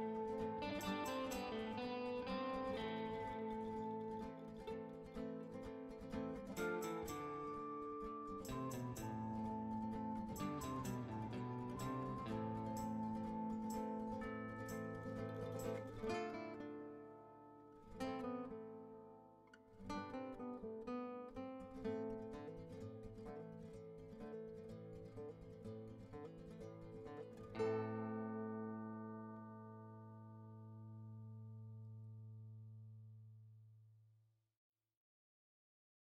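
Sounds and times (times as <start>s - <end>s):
plucked string instrument music: 0.0s - 32.5s.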